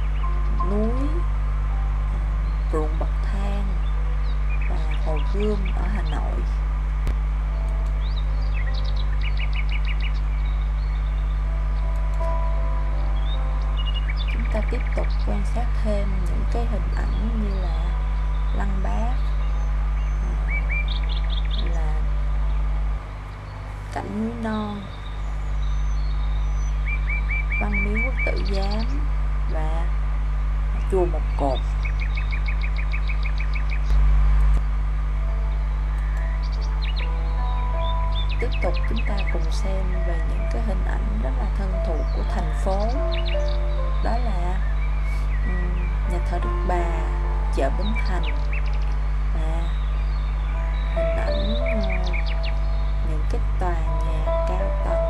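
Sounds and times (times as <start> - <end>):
low electrical hum: 0.0 - 55.0
small birds chirping: 0.0 - 55.0.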